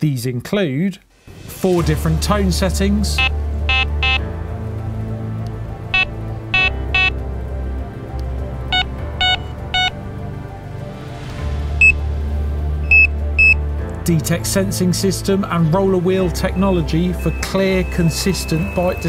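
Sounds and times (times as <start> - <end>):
background music with bass: 1.3 - 19.0
bite alarm electronic beeps: 3.2 - 4.3, 6.0 - 7.2, 8.7 - 10.0, 12.9 - 13.6, 17.2 - 19.0.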